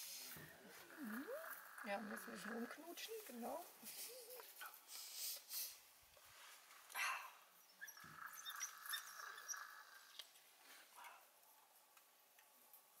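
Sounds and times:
wild dogs calling: 0.3 - 4.6, 7.0 - 11.4.

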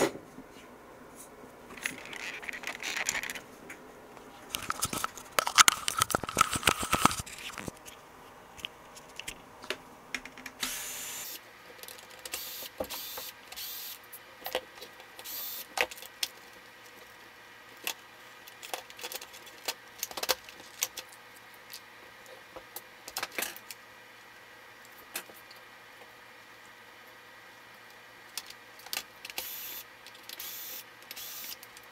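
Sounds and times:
plastic and metal parts clicking: 4.5 - 7.7.

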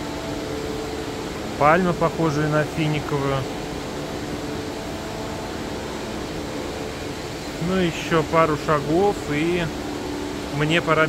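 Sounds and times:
ventilation hiss and hum: 0.0 - 11.0.

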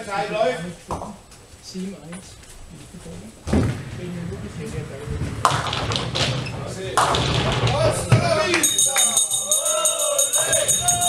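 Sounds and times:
rumble of balls and pins: 0.0 - 9.6
voices in a hall: 0.0 - 11.0
bowling ball thuds: 3.4 - 8.6.

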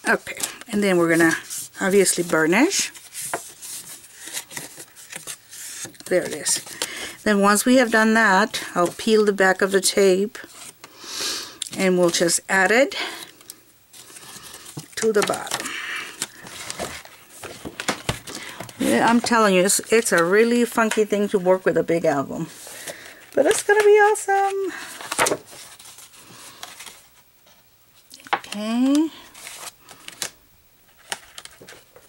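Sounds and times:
cardstock paper rustling: 0.1 - 9.8, 13.9 - 21.7, 22.5 - 27.2, 30.9 - 32.0.

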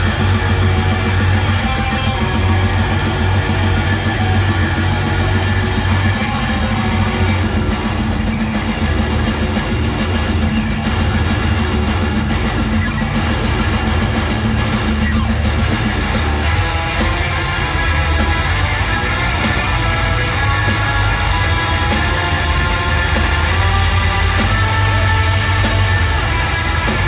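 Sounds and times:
heavy metal band playing live: 0.0 - 27.0.

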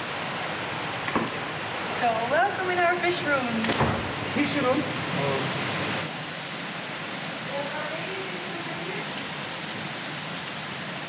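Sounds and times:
water rushing in tanks: 0.0 - 11.0
woman's voice: 2.0 - 3.7, 7.5 - 9.1.

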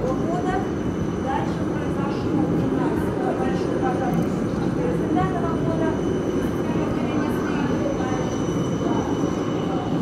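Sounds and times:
electric trams running on rails: 0.0 - 10.0.

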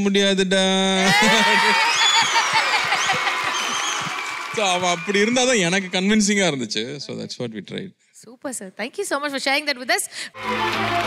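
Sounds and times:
audience laughing and clapping: 1.0 - 6.4, 10.4 - 11.0.

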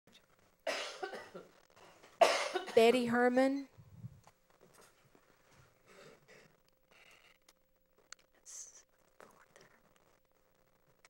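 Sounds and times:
person coughing: 0.7 - 1.5, 2.2 - 2.9.

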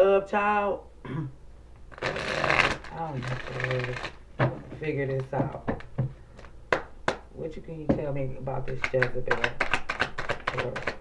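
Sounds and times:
cards being shuffled: 1.8 - 7.2, 8.7 - 11.0.

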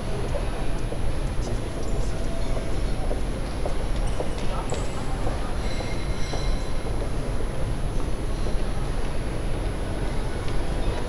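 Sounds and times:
high squealing of train wheels: 4.1 - 7.3.

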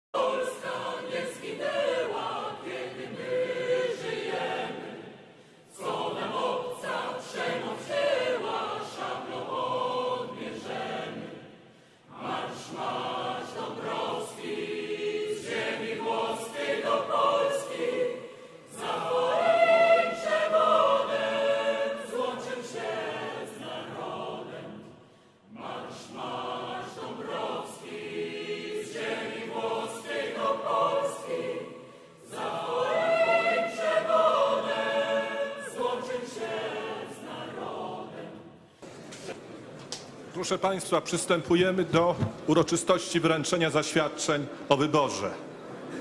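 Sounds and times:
mixed choir singing: 0.1 - 39.8, 45.5 - 46.0.

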